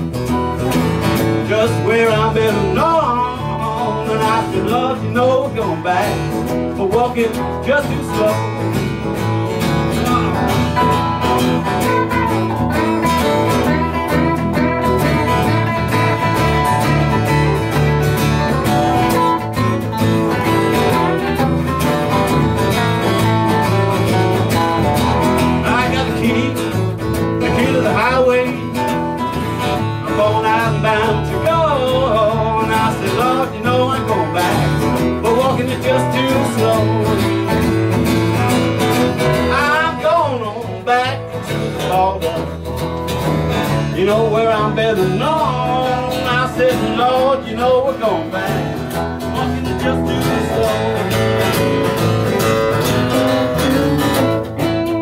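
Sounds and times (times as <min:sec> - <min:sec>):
acoustic guitar strumming: 0:00.0 - 0:55.0
electric guitar lead lines: 0:00.0 - 0:55.0.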